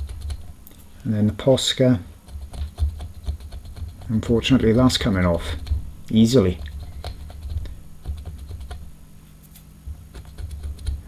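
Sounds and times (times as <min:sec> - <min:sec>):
fingernail scratching paint off glass: 0:02.3 - 0:04.9.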